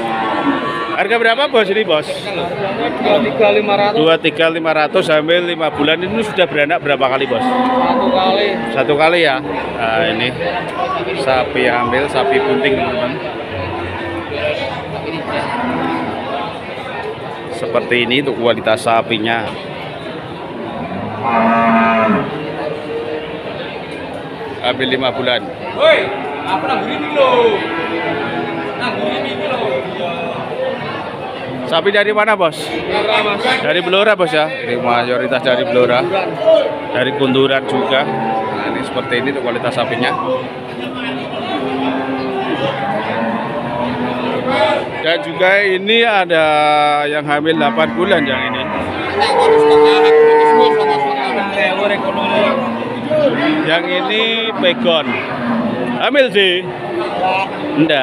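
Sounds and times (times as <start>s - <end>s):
cow mooing: 0.0s - 1.2s, 7.2s - 10.3s, 11.7s - 16.6s, 20.6s - 23.4s, 26.0s - 29.6s, 36.6s - 44.9s, 47.3s - 58.0s.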